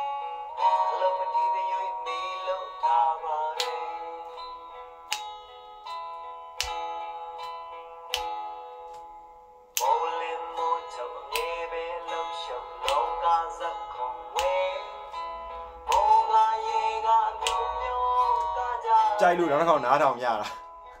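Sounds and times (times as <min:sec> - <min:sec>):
person singing: 0:00.0 - 0:05.2, 0:09.8 - 0:21.0
acoustic guitar chords: 0:00.0 - 0:21.0.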